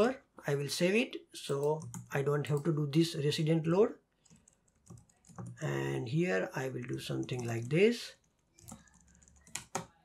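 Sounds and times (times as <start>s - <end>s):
computer keyboard key clicks: 4.2s - 5.6s, 8.6s - 10.0s.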